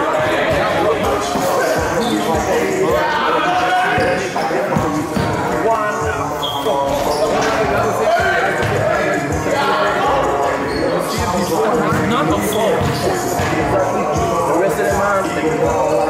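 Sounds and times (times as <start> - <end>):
players' voices in gym: 0.0 - 16.0.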